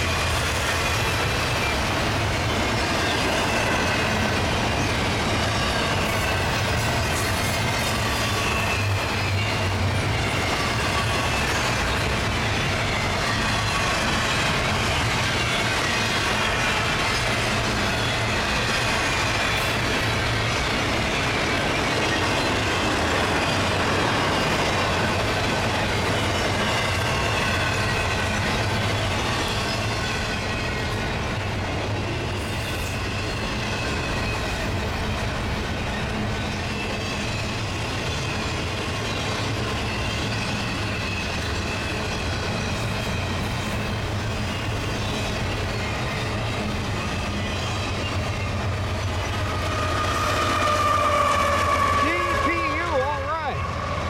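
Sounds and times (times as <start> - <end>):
freight train wheels rumbling: 0.0 - 54.0
locomotive approaching: 0.0 - 54.0
train wheels squealing: 0.0 - 54.0.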